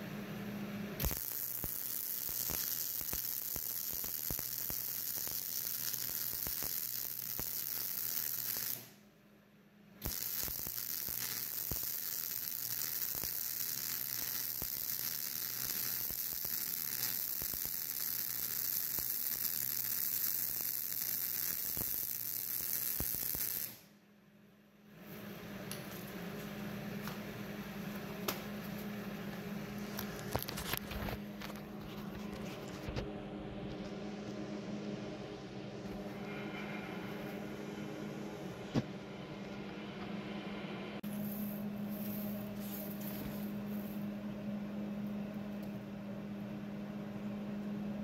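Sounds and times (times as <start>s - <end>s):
welding arc crackling: 1.0s - 9.0s, 10.0s - 23.9s.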